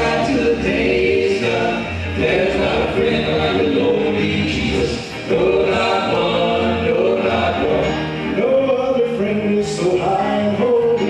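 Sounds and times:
men singing gospel in harmony: 0.0s - 11.0s.

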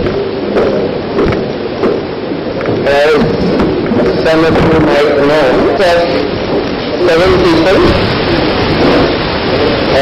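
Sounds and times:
faint man's voice: 2.8s - 3.4s, 4.0s - 8.1s.

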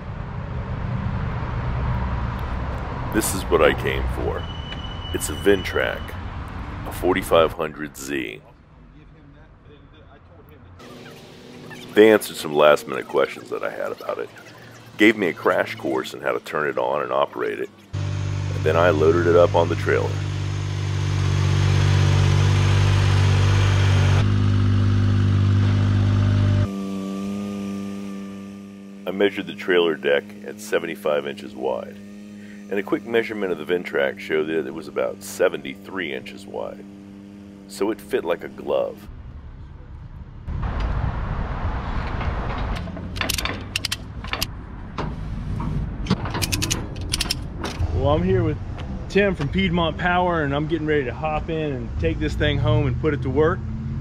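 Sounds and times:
tractor engine running: 10.8s - 39.6s, 42.5s - 51.6s
ratchet strap clicking: 43.2s - 44.5s, 46.4s - 47.4s.

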